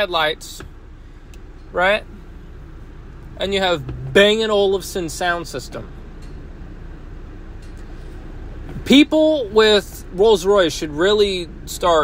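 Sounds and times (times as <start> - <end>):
truck cabin rumble and hiss: 0.0 - 12.0.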